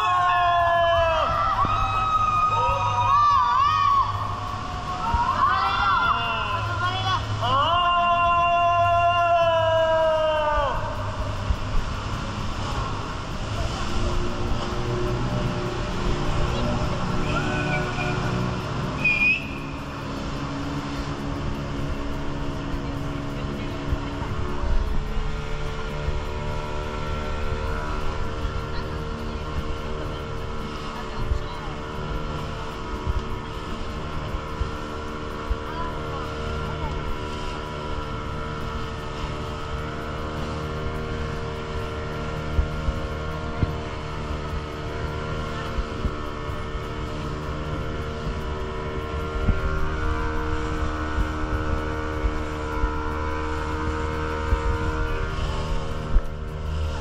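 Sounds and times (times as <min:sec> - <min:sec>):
motorboat engine droning: 0:00.0 - 0:57.0
water rushing: 0:00.0 - 0:57.0
wind: 0:00.0 - 0:57.0.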